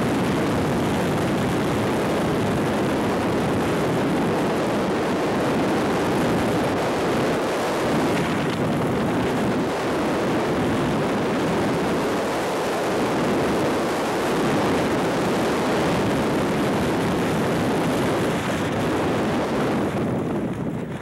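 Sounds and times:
freefall wind rushing: 0:00.0 - 0:21.0.

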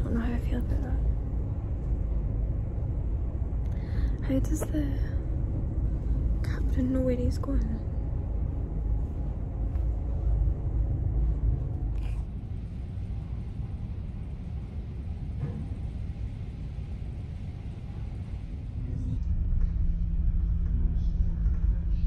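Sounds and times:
low rumble inside ship: 0:00.0 - 0:22.0.

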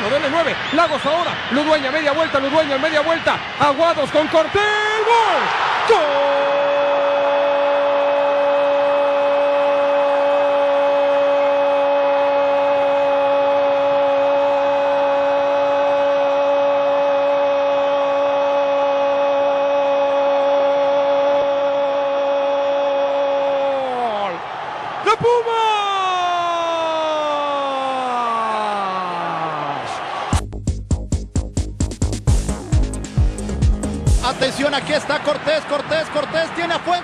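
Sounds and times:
commentator shouting goal: 0:00.0 - 0:06.8, 0:25.0 - 0:29.9
stadium crowd noise: 0:00.0 - 0:30.4, 0:34.2 - 0:37.0.

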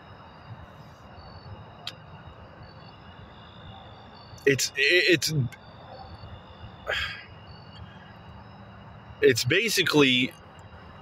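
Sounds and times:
short breath: 0:06.9 - 0:07.2.

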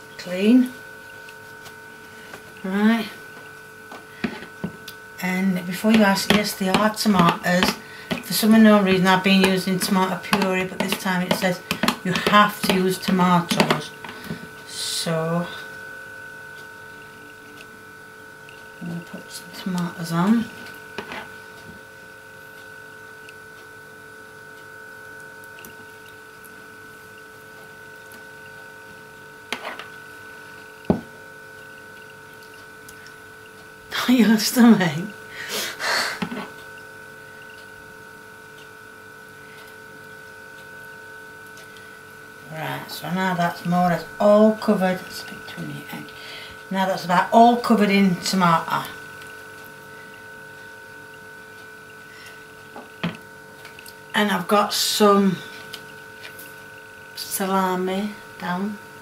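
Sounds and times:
steady electrical hum: 0:00.0 - 0:59.0.

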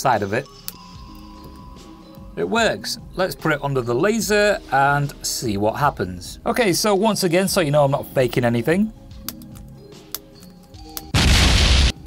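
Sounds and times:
explosion: 0:11.2 - 0:12.0.

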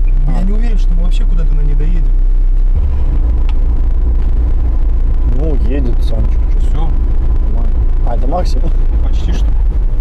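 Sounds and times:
car engine and drivetrain droning: 0:00.0 - 0:10.0.

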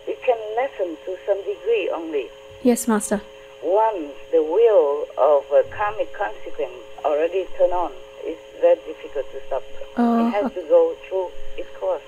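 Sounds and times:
woman talking over telephone: 0:01.5 - 0:03.2, 0:10.0 - 0:11.2.

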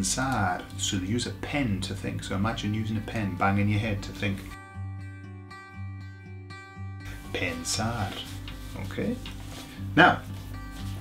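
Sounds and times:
strummed guitar chords: 0:00.0 - 0:11.0.

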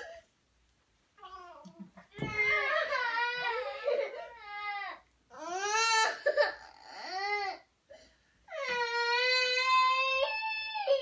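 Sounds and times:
toddler crying: 0:01.2 - 0:07.7, 0:08.5 - 0:11.0.

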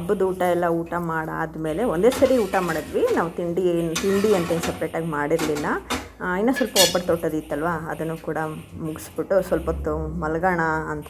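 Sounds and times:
metal turner scraping iron griddle: 0:01.8 - 0:07.3.

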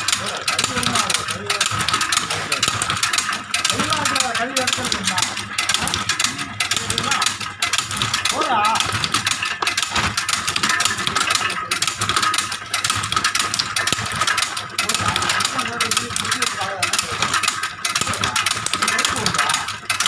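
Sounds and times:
cutting machine clatter: 0:00.0 - 0:20.0.

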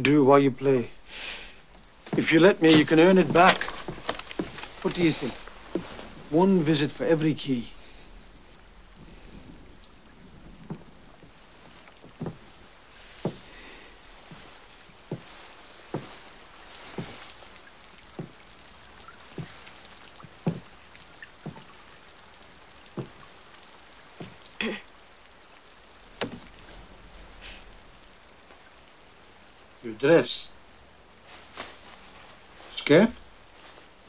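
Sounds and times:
slow uneven taps: 0:01.5 - 0:27.0
brief rustle: 0:02.7 - 0:06.1.

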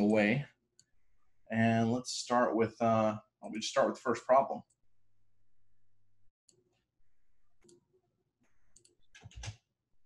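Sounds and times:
computer mouse clicks: 0:08.6 - 0:09.6.

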